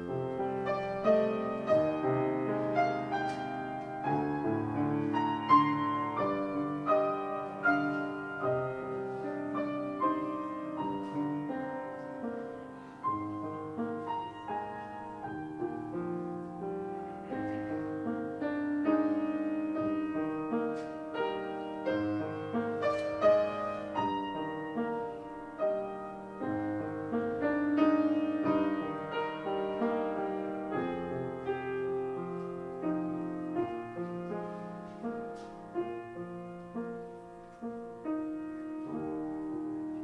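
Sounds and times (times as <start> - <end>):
slow solo piano: 0.0 - 40.0.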